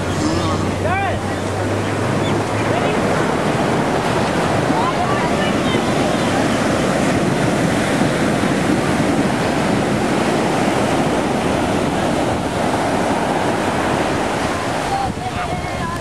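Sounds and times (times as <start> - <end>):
ocean surf breaking: 0.0 - 16.0.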